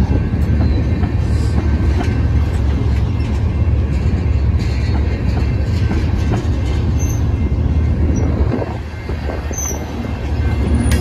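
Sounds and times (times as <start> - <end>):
train wheels rumbling on rails: 0.0 - 11.0
high-pitched wheel squeals: 9.4 - 10.0.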